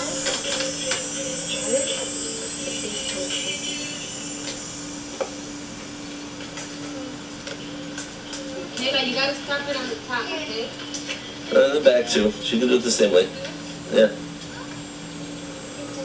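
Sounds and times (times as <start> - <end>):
faint indistinct voices: 0.0 - 4.7, 6.6 - 16.0
steady low hum: 0.0 - 16.0.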